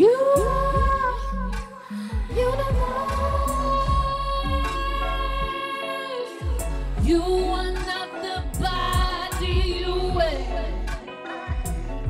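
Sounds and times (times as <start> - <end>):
woman singing into a microphone: 0.0 - 11.6
electronic pop track: 0.0 - 12.0
deep sliding bass notes: 2.3 - 5.5.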